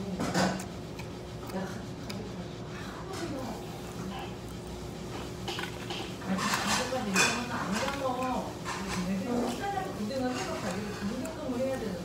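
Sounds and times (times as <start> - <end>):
metal spoon scraping and clinking bowl: 5.9 - 11.4.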